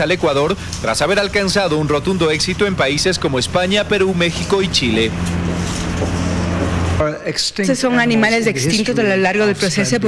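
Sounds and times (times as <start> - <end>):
vehicle engine running: 0.0 - 7.0
road traffic noise: 0.0 - 7.3.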